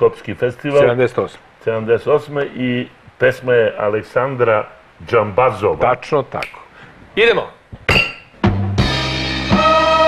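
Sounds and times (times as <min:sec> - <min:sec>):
orchestral pop music: 0:08.4 - 0:10.0.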